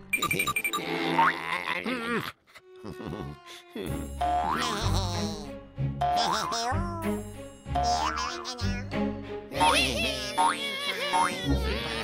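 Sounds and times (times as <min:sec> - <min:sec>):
bouncy cartoon music: 0:00.0 - 0:01.8, 0:02.9 - 0:12.0
boing sound effects: 0:04.2 - 0:04.8, 0:06.0 - 0:06.5.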